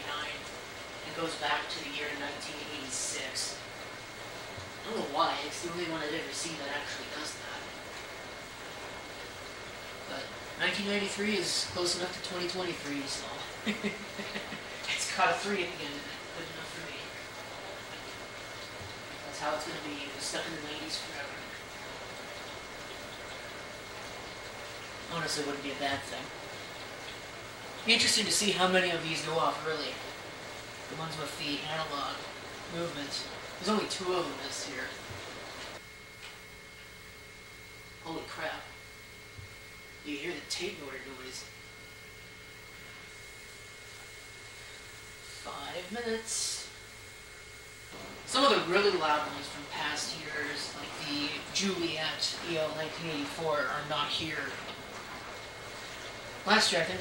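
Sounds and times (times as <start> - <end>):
faint high whine: 0.0 - 57.0
steady background hiss: 0.0 - 57.0.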